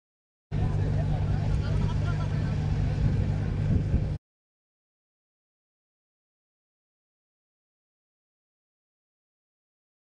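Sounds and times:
motor humming with rumble: 0.5 - 4.2.

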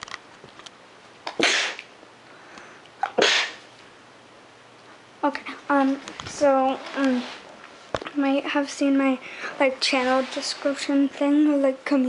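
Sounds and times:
child sneezing: 1.4 - 1.9, 3.1 - 3.6.

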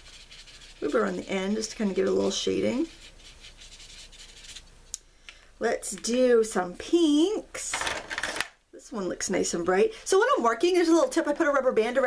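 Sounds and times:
marker scratching on paper: 0.0 - 4.7.

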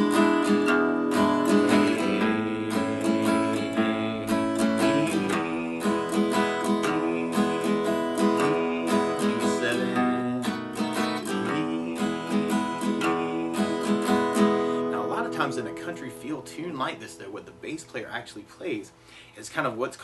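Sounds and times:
acoustic guitar bass and strum: 0.0 - 20.0.

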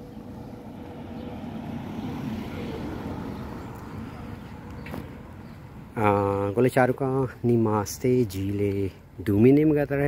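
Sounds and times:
car driving past: 0.0 - 5.4.

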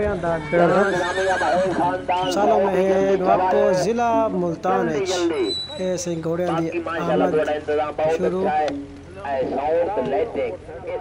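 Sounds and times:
man's voice: 0.0 - 11.0
horse whinnying: 0.2 - 2.4.

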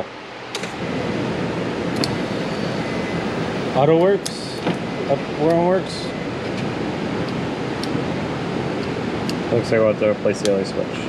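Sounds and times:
power window motor whirring: 1.9 - 5.8.

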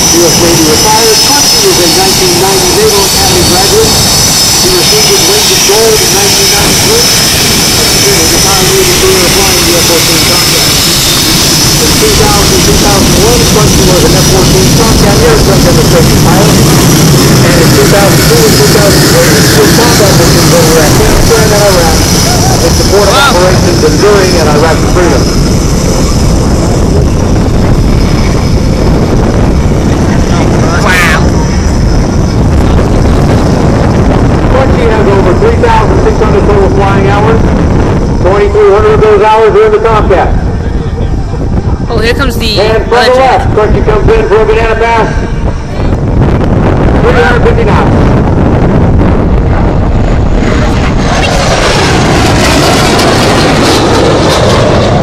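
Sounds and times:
high whine falling in pitch: 0.0 - 55.0
jet engines roaring: 0.0 - 55.0.

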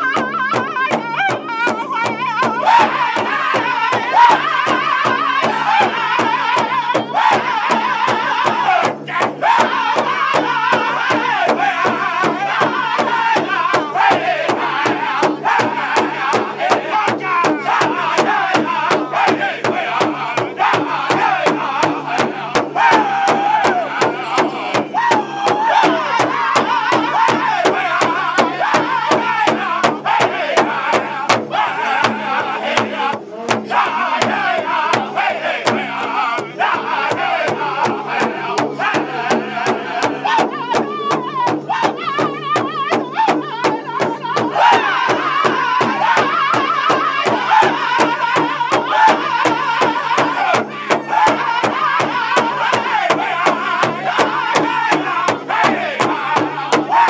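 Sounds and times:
high voices singing in unison: 0.0 - 57.0
large drum beat: 0.0 - 57.0.

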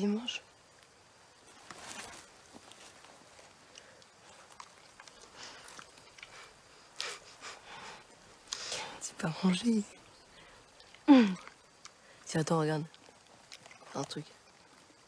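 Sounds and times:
eating smacks: 3.7 - 7.6.

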